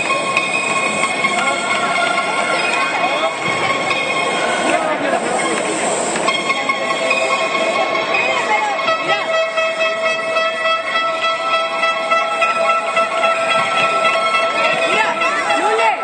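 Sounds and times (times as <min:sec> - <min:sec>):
crowd voices: 0:00.0 - 0:16.0.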